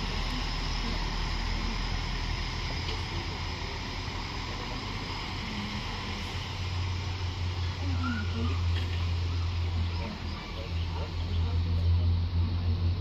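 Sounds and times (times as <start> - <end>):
train engine droning: 0.0 - 13.0.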